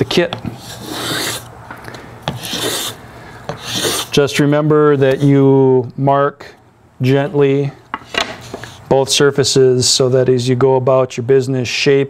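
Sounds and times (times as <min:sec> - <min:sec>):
block plane shaving wood: 0:00.5 - 0:01.5, 0:02.3 - 0:04.2.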